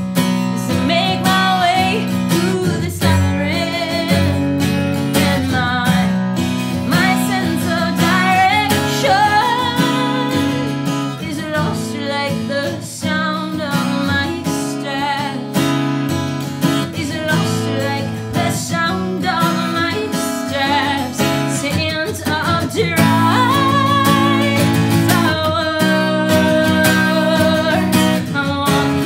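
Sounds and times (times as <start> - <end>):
strummed acoustic guitar: 0.0 - 29.0
woman singing: 0.4 - 29.0.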